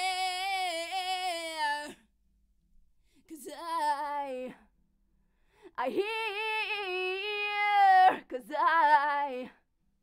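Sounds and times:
woman singing unaccompanied: 0.0s - 2.0s, 3.2s - 4.7s, 5.7s - 9.6s.

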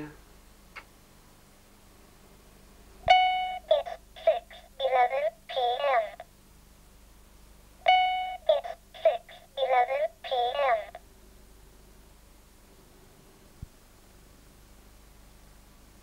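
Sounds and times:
short steady beep: 3.1s - 3.7s, 7.9s - 8.5s
robotic synthesised voice: 8.5s - 11.0s.

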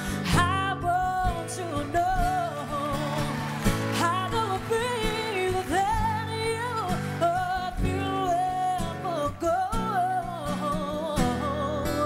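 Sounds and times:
band with guitar: 0.0s - 12.0s
woman singing: 0.0s - 12.0s.

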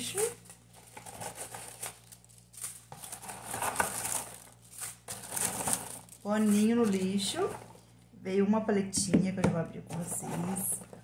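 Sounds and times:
packaging crinkling and rustling: 0.0s - 7.8s.

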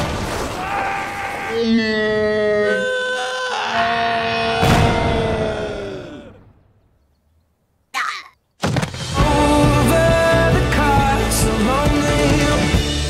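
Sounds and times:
cartoon voice long cry: 0.7s - 6.4s, 8.0s - 8.4s.

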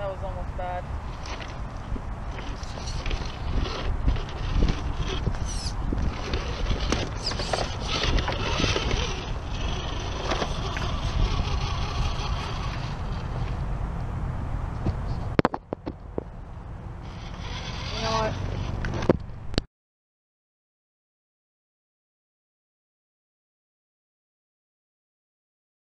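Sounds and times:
steady low rumble: 0.0s - 19.6s
toy car motor and gears whining: 1.1s - 1.6s, 2.3s - 13.6s, 17.0s - 19.1s.

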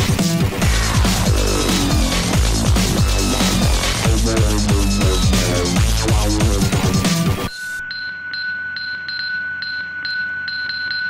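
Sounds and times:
sustained high synthesizer tone: 0.6s - 8.0s.

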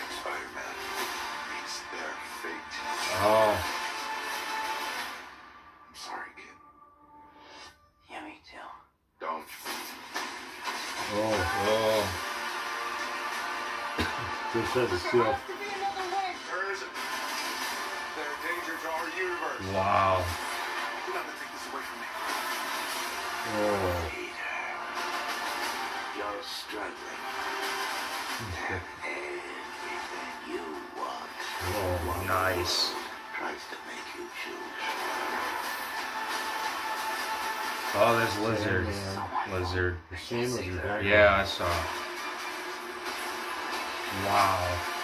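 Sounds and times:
film trailer music and effects: 0.0s - 45.0s
person speaking: 19.6s - 20.4s, 38.0s - 39.7s, 44.1s - 44.8s.

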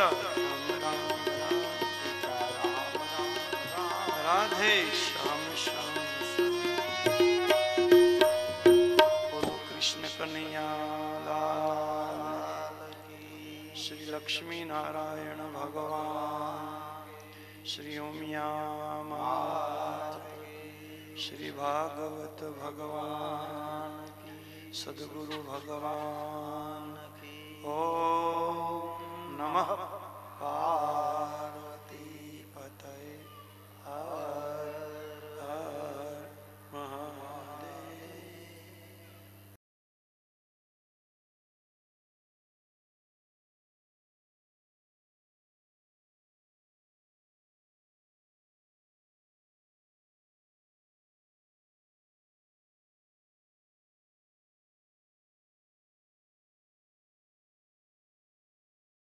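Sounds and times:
sharp percussive strikes: 0.0s - 9.8s
man chanting melodically: 0.0s - 39.3s
low electrical hum: 9.7s - 39.6s.

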